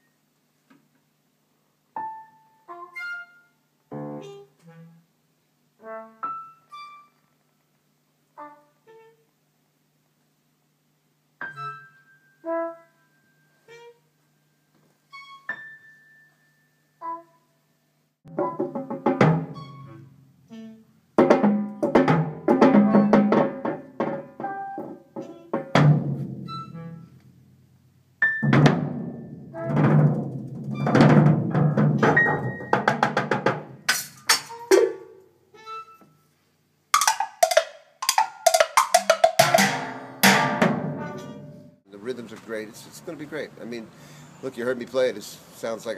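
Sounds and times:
loud drum hits: 25.6s - 26.6s, 28.3s - 34.0s, 37.0s - 41.8s
jazz big band playing: 37.0s - 41.8s
ringing percussion strikes: 37.0s - 41.8s.

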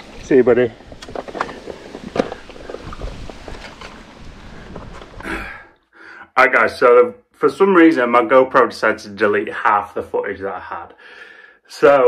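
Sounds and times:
wind rumbling on microphone: 0.0s - 5.7s.

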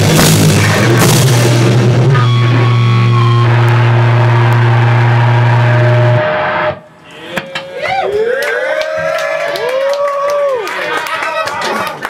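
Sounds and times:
distorted metal chord ringing: 0.0s - 7.0s
audience clapping: 3.5s - 5.2s, 8.0s - 12.0s.

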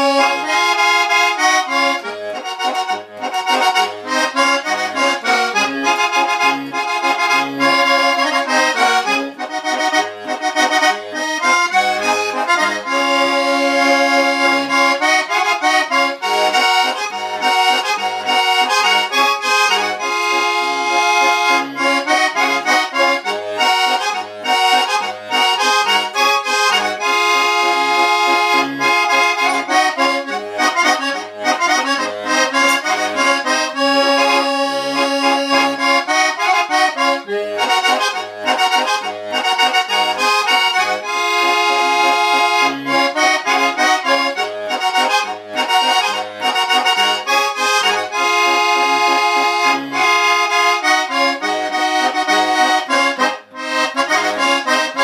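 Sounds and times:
button accordion playing melody: 0.0s - 55.0s.

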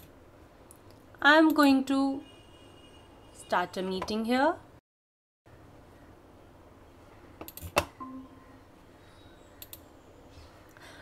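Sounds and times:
brief faint tone: 8.0s - 8.6s
computer mouse clicks: 9.6s - 9.9s.

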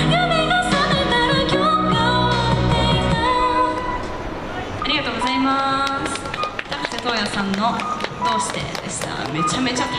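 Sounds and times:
woman singing into microphone: 0.0s - 4.1s.

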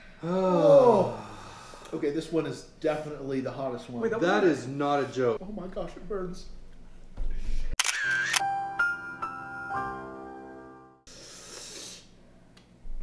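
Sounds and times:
burst of hiss: 11.1s - 12.1s.

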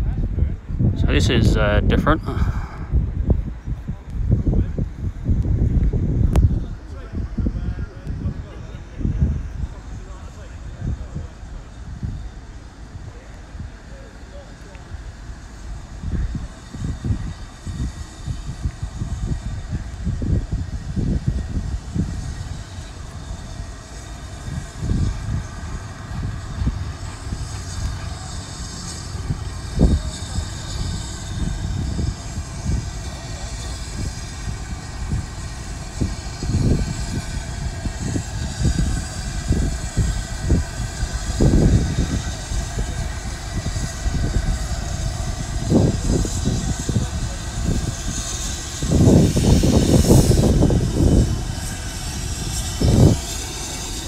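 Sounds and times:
steam locomotives rumbling: 0.0s - 54.0s.

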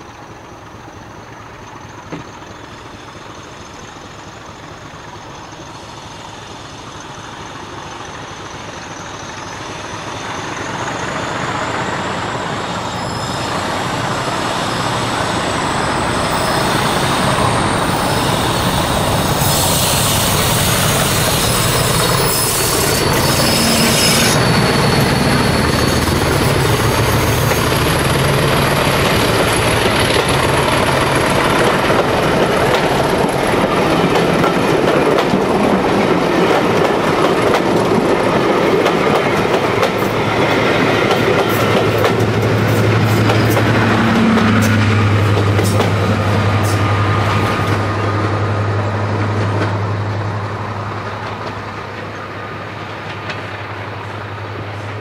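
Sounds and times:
diesel locomotive engine: 0.0s - 55.0s
wheels on rails clickety-clack: 0.3s - 48.4s, 49.0s - 55.0s.

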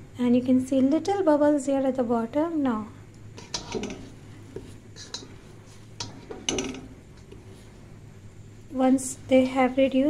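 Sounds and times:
low steady hum: 0.0s - 10.0s
utensil clinking against pot: 3.4s - 4.1s, 6.0s - 7.0s
paste frying: 3.4s - 8.0s.

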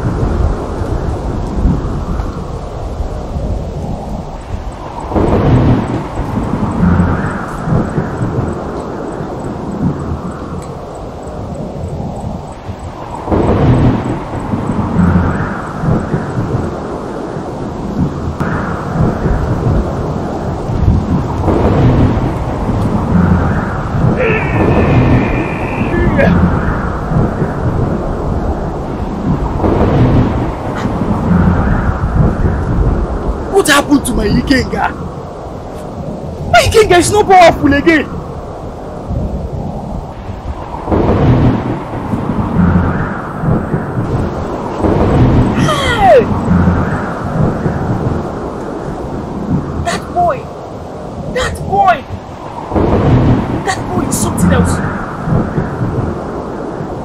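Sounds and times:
thunder rumbling: 0.0s - 57.0s.

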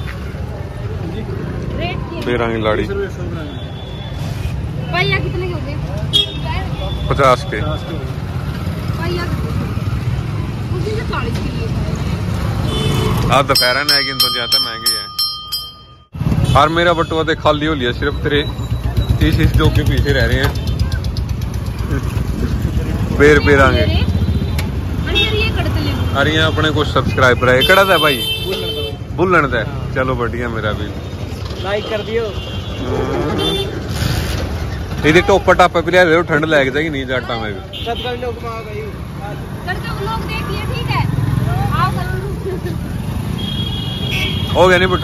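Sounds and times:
vehicle engines rumbling: 0.0s - 45.0s
voices talking: 4.8s - 15.9s, 16.6s - 34.0s.

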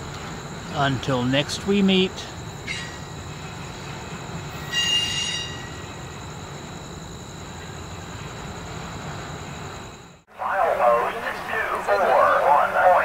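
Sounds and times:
train wheels rumbling on rail: 2.1s - 9.9s
wheel flange squeal: 4.6s - 5.9s.

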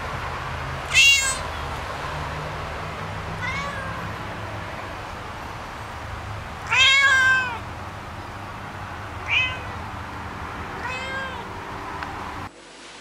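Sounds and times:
cat meowing: 0.9s - 1.6s, 3.4s - 4.1s, 6.6s - 7.6s, 9.2s - 9.8s, 10.8s - 11.5s.

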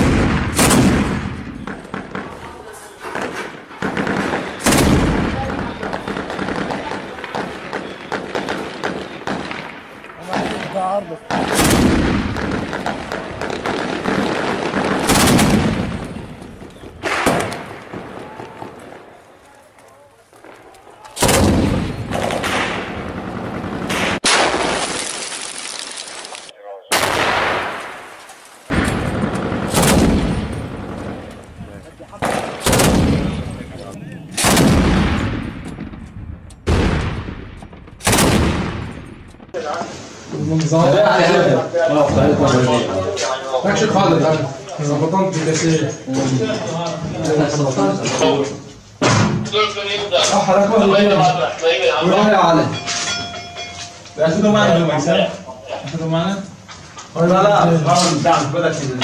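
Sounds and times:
single gunshots: 0.0s - 2.4s, 3.2s - 16.2s, 17.0s - 18.8s, 21.2s - 25.1s, 26.9s - 28.1s, 28.7s - 31.3s, 32.2s - 36.0s, 36.6s - 39.2s
automatic gunfire bursts: 11.5s - 15.8s, 32.2s - 33.4s.

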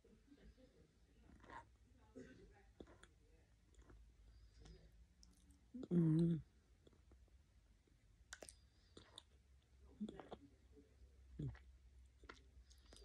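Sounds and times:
woman chewing with mouth smacks: 2.7s - 7.2s, 8.3s - 9.4s, 10.0s - 10.5s, 11.4s - 13.0s.

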